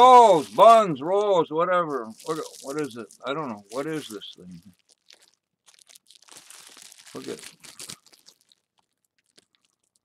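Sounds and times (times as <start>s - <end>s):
plastic bag crinkling: 0.0s - 0.9s, 1.9s - 10.0s.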